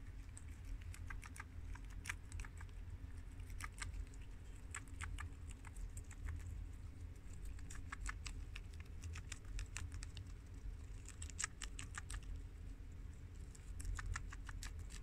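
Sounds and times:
guinea pig crunching lettuce: 0.0s - 15.0s
low steady hum: 0.0s - 15.0s.

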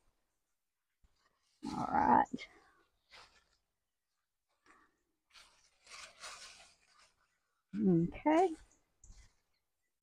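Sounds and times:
rustling of leaves and stems: 0.4s - 10.0s.

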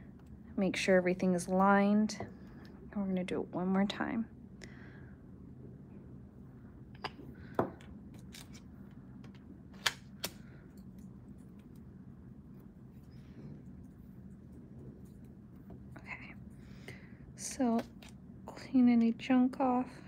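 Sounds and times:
faint room hum: 0.0s - 20.0s.

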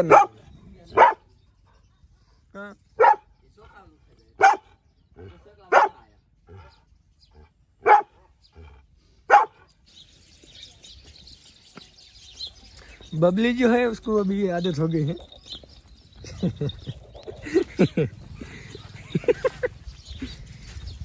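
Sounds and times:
dog barking: 0.0s - 0.4s, 1.0s - 1.3s, 3.0s - 3.3s, 4.4s - 4.7s, 5.7s - 6.0s, 7.8s - 8.2s, 9.3s - 9.6s.

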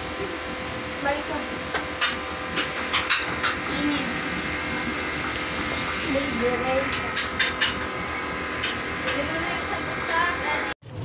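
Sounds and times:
electric fan whooshing: 0.0s - 11.0s.

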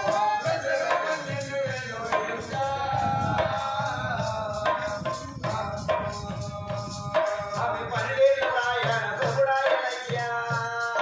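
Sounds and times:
steady percussion beat: 0.0s - 11.0s.

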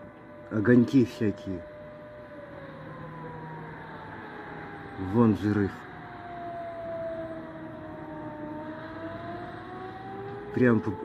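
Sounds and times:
distant air-raid siren wailing: 0.0s - 11.0s
second siren tone gliding upward: 0.0s - 11.0s.

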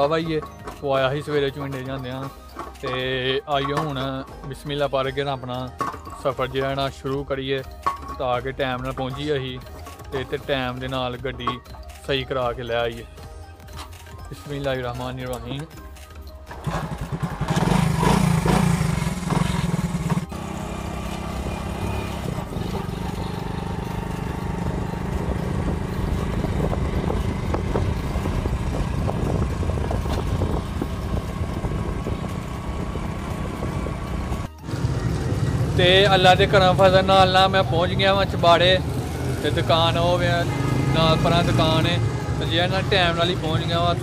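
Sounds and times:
motorcycle engine running: 16.5s - 44.0s
wind and road noise: 16.5s - 44.0s.

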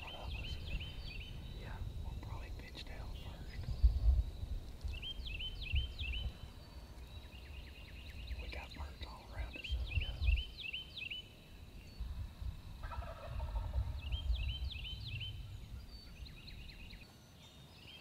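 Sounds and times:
turkey gobbling: 12.8s - 13.8s.

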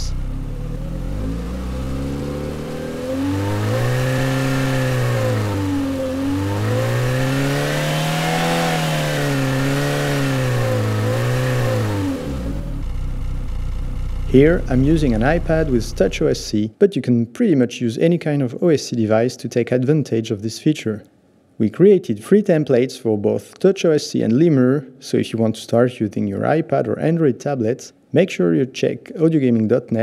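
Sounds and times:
car engine revving: 0.0s - 16.6s.

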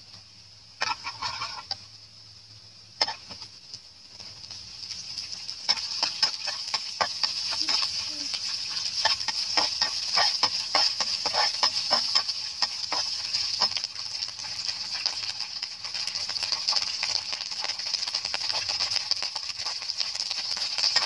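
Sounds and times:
food sizzling in hot oil: 0.0s - 21.0s
metal spatula scraping pan: 0.8s - 1.8s, 5.6s - 13.8s.

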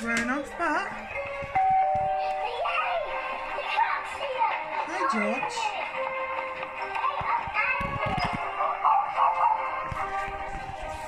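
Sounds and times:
music and voices from a screen: 0.0s - 11.0s.

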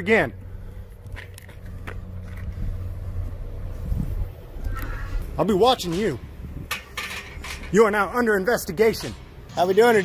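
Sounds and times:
vehicle engine idling: 0.1s - 5.6s.

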